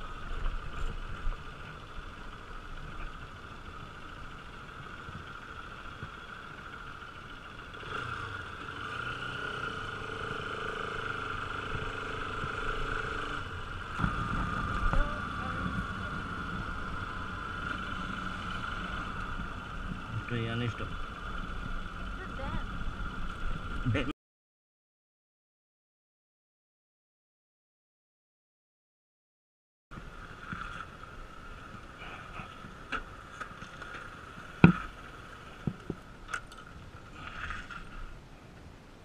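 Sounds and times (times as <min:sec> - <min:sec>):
motorcycle engine running: 0:00.0 - 0:24.1.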